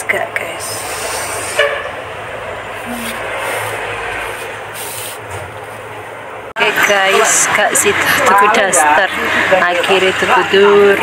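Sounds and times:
rushing background noise: 0:00.0 - 0:11.0.

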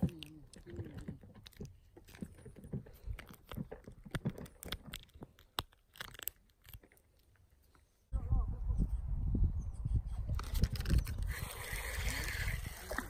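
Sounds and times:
wind buffeting microphone: 0:08.1 - 0:13.0.

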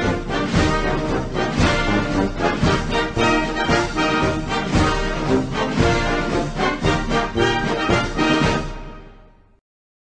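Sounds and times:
music: 0:00.0 - 0:09.6.

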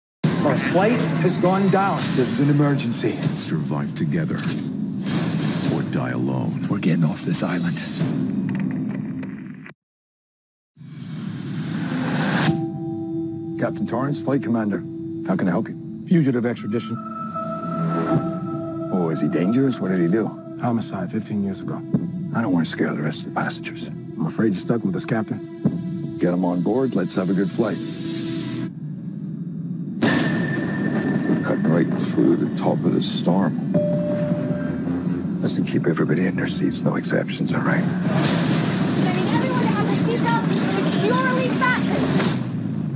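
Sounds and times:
high-pitched cockpit tone: 0:12.5 - 0:21.9, 0:33.7 - 0:35.3
deep rumbling drone: 0:12.7 - 0:38.2.

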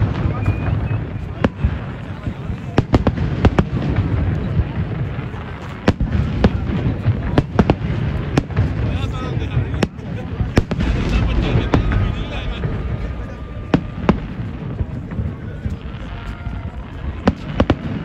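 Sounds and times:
fireworks bangs: 0:00.0 - 0:18.0
low rumble: 0:03.8 - 0:18.0.

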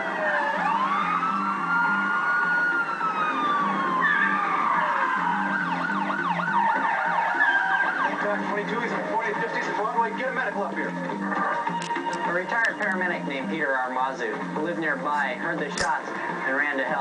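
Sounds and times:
police sirens wailing and yelping: 0:00.0 - 0:17.0.

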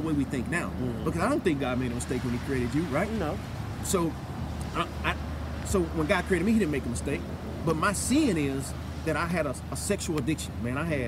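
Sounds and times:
man speaking haltingly: 0:02.9 - 0:07.0.

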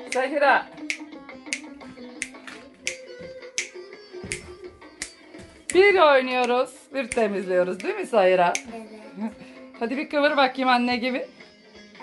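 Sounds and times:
sharp clicks keeping the beat: 0:00.0 - 0:04.4, 0:05.0 - 0:08.7
song from portable radio: 0:00.0 - 0:12.0.

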